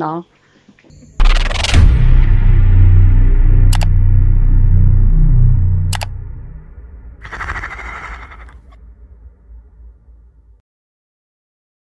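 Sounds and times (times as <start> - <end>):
deep dark drone: 1.1 - 10.6
sharp clicks: 1.2 - 2.0, 3.7 - 3.9, 5.9 - 6.1.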